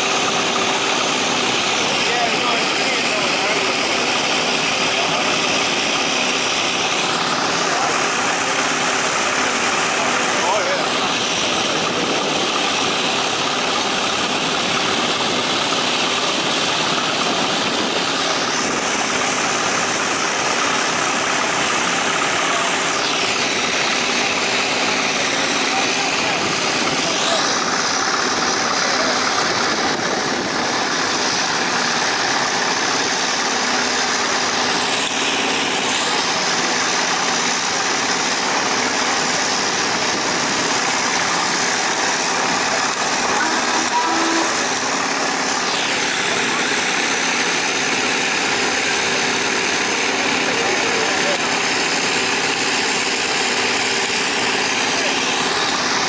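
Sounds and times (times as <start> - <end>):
crowd voices: 0.0 - 56.0
old engines running: 0.0 - 56.0.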